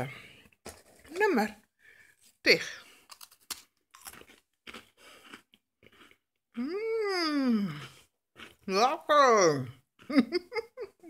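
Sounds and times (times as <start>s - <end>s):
person chewing crisp biscuit: 2.8s - 8.7s, 9.7s - 10.6s.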